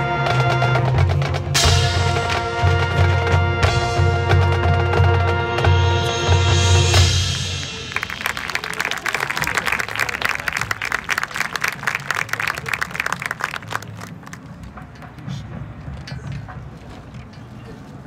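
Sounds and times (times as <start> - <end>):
marching band held chord: 0.0 - 10.0
audience applauding: 7.6 - 14.7.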